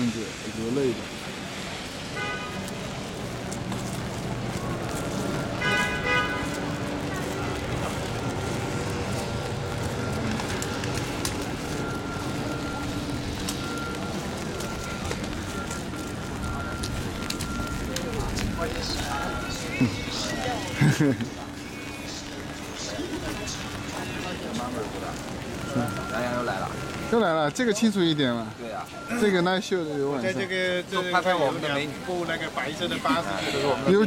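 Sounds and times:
crowd voices: 0.0s - 34.0s
rain on wet street: 0.0s - 34.0s.

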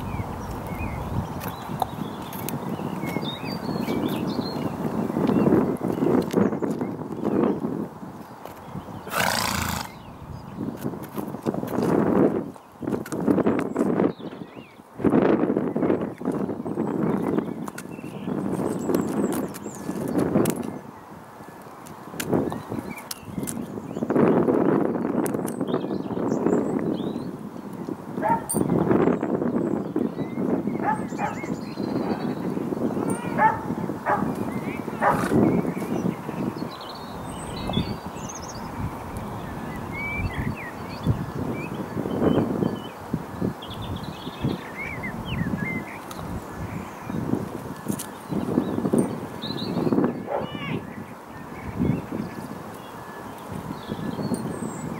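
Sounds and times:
wind on microphone: 0.0s - 54.9s
pony breathy snort: 9.0s - 10.0s.

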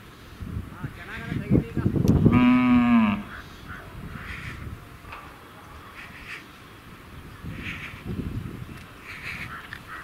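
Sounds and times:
bull mooing: 2.3s - 3.4s.

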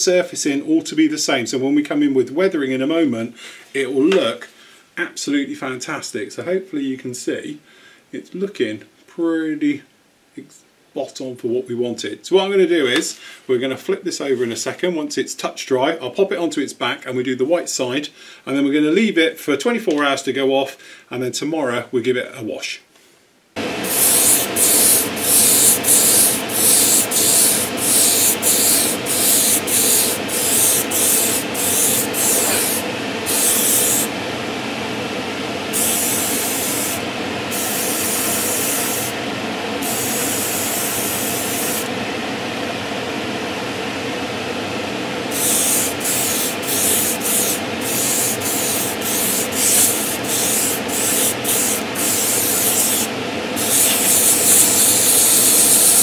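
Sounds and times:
extractor fan rushing: 23.6s - 56.0s
airbrush spraying: 23.7s - 34.1s, 35.7s - 39.2s, 39.8s - 42.0s, 45.3s - 56.0s.

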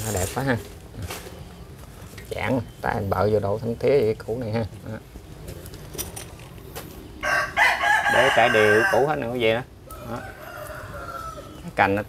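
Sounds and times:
rooster crowing: 7.2s - 11.7s.

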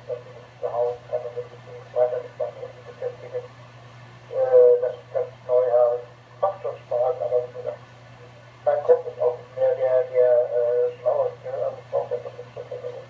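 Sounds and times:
tinny radio voice: 0.0s - 3.5s, 4.3s - 13.0s
steady low hum: 0.0s - 13.0s.

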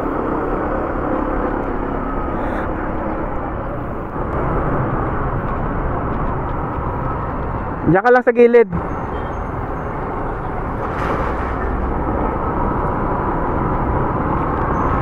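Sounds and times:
wind and road noise: 0.0s - 15.0s.

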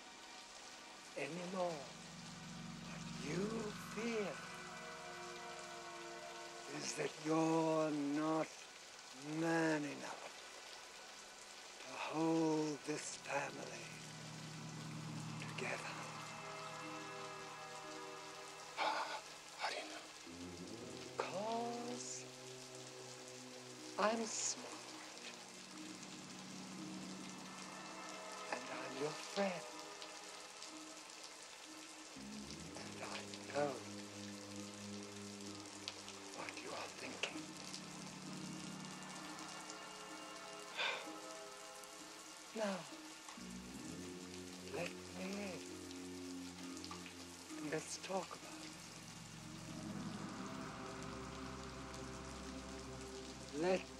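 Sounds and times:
droning film score chord: 0.0s - 53.9s
steady rain: 0.0s - 53.9s
man's voice: 1.2s - 1.9s, 3.2s - 4.4s, 6.7s - 10.4s, 11.8s - 14.0s, 15.4s - 16.2s, 18.8s - 20.2s, 20.8s - 22.2s, 24.0s - 25.0s, 28.5s - 29.7s, 32.2s - 33.9s, 36.4s - 37.6s, 42.6s - 42.9s, 44.6s - 45.7s, 47.6s - 48.6s, 53.5s - 53.9s
gliding eerie sound: 2.0s - 7.5s, 13.6s - 23.1s, 48.5s - 53.9s.

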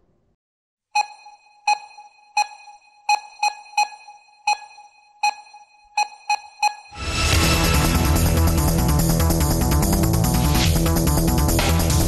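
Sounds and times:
electronic ticking pings: 1.0s - 7.0s.

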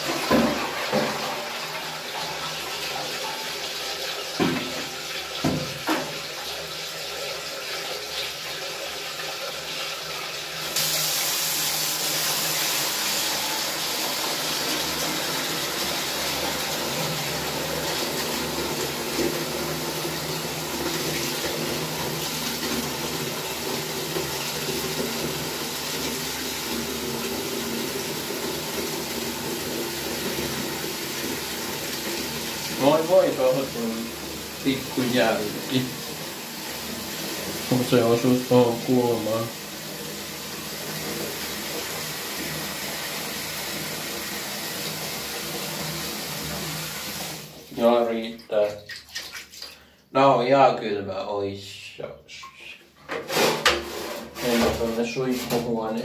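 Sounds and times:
tap water running into container: 0.0s - 50.0s.

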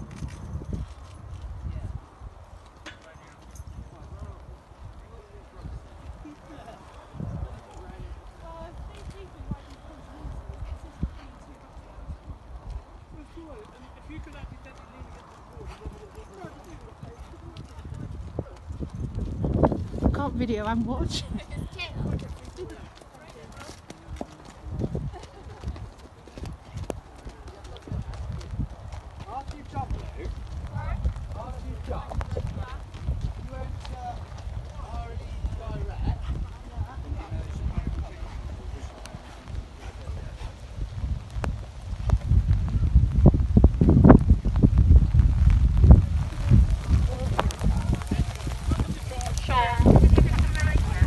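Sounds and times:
horse hooves clopping: 0.0s - 51.0s
wind rumbling on microphone: 0.0s - 51.0s.

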